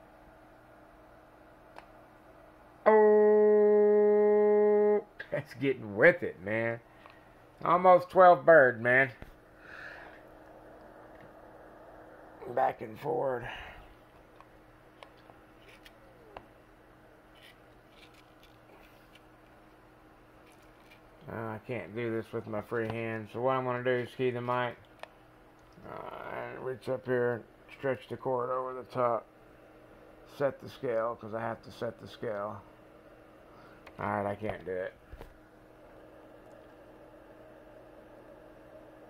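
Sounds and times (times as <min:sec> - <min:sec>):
steady buzzy test tone: 0:00.0 - 0:24.8
faint low hum: 0:00.0 - 0:39.0.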